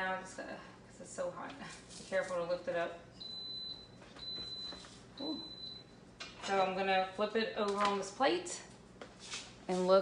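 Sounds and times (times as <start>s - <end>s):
electronic timer beeps: 3.2s - 5.9s.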